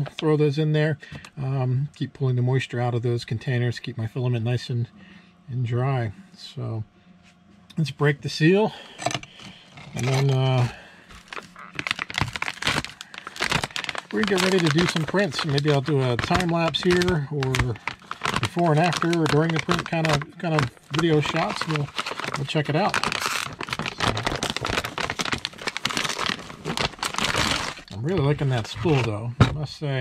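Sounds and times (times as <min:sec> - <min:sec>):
plastic bag crinkling and tearing: 0:09.3 - 0:29.2.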